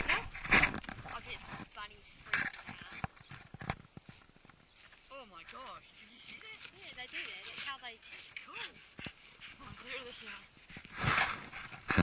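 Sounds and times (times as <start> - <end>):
dog paws scraping soil: 0.0 - 12.0.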